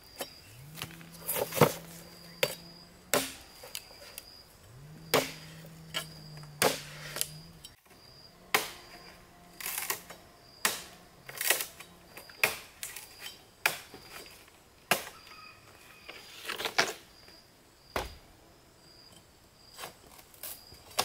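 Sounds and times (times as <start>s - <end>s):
bamboo poles knocking together: 0.7s - 3.9s, 6.5s - 7.3s.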